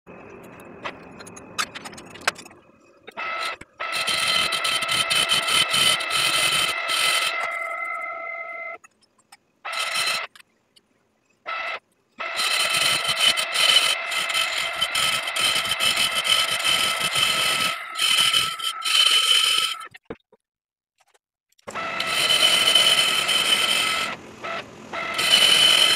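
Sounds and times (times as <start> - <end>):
metal lathe whining: 3.1 - 8.0, 12.2 - 19.9, 21.7 - 25.9.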